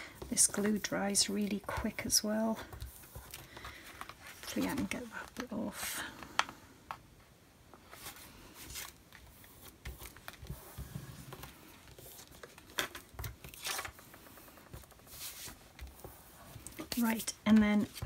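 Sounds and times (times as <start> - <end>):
card rustling and scraping: 0.1 - 5.6, 7.9 - 18.0.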